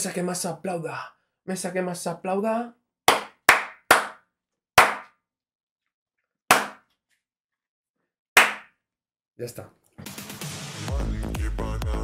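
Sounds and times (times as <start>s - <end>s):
hand claps: 3.1s - 4.2s, 4.8s - 5.2s, 6.5s - 6.8s, 8.4s - 8.7s
outro song: 10.0s - 12.0s
person singing: 10.8s - 12.0s.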